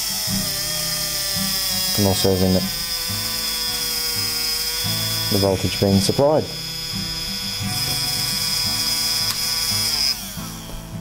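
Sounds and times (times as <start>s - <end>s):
small drill motor whining: 0.0s - 11.0s.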